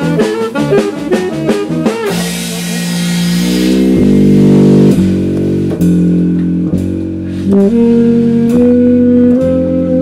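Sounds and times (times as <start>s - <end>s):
alto saxophone held notes: 0.0s - 5.1s, 7.4s - 10.0s.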